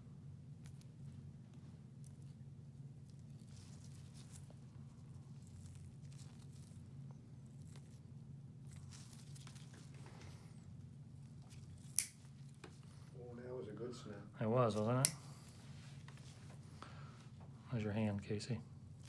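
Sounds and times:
low room hum: 0.0s - 19.0s.

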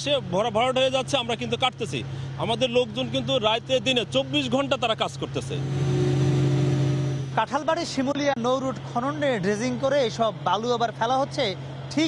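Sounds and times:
engine hum: 0.0s - 12.0s.

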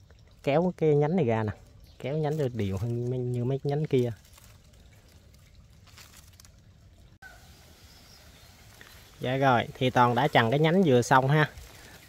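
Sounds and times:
leaves rustling: 0.0s - 12.0s.

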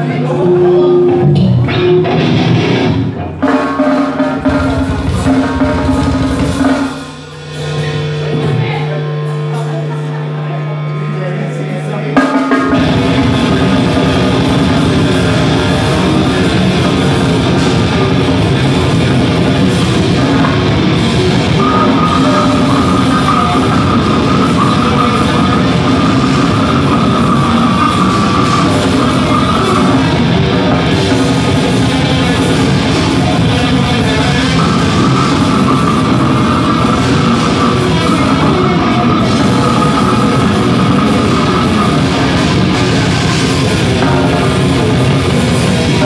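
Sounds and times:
live metal band playing: 0.0s - 46.0s.

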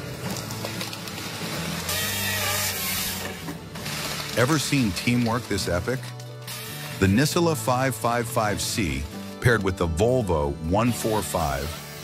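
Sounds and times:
saw cutting through log: 1.5s - 7.6s, 10.1s - 12.0s.

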